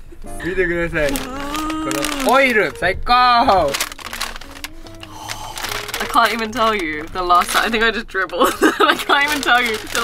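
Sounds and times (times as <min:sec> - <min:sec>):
soft background music: 0:00.2 - 0:10.0
paper bag rustling and crinkling: 0:00.9 - 0:10.0.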